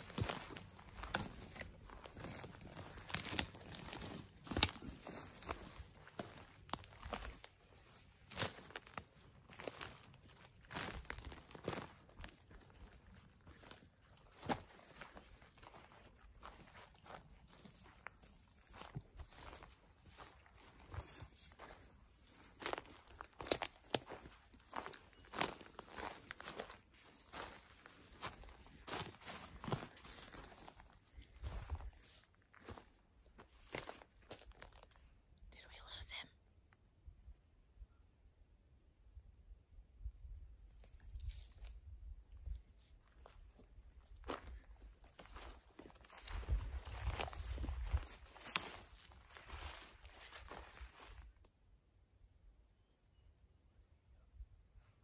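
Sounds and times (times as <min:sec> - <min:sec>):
twigs crackling and snapping: 0:00.0 - 0:32.8, 0:43.3 - 0:51.2
footsteps through dry undergrowth: 0:00.0 - 0:35.0, 0:40.7 - 0:51.5.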